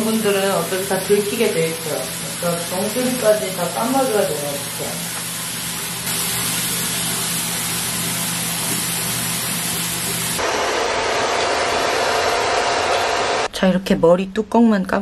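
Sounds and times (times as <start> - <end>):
tap water running into sink: 0.0 - 10.4
hair dryer blowing: 0.0 - 13.5.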